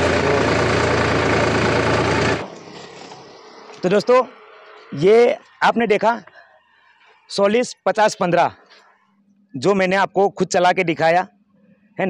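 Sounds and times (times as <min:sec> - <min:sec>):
tractor diesel engine running: 0:00.0 - 0:03.8.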